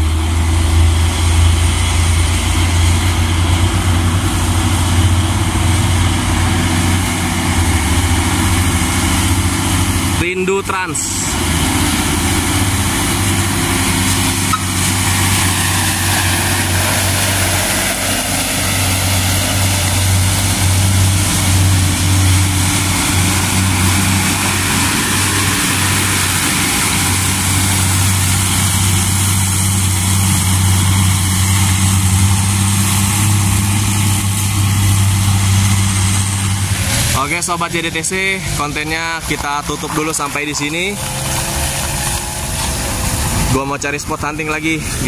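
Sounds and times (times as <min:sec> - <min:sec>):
diesel trucks driving past: 0:00.0 - 0:45.0.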